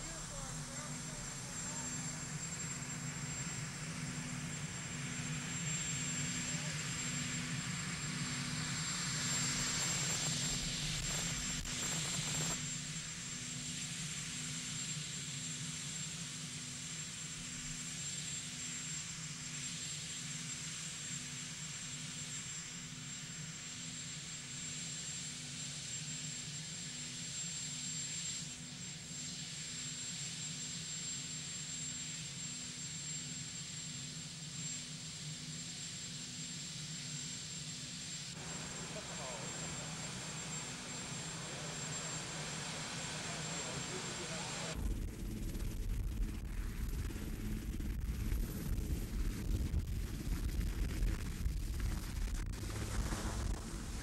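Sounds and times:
helicopter engines and rotor: 0.0 - 54.0.

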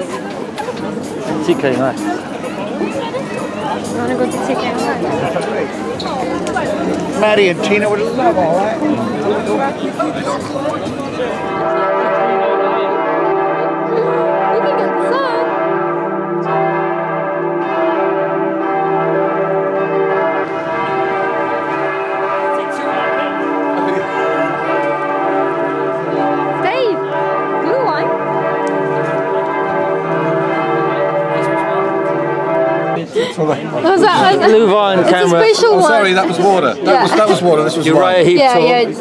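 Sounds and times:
church bells pealing: 0.0 - 39.0.

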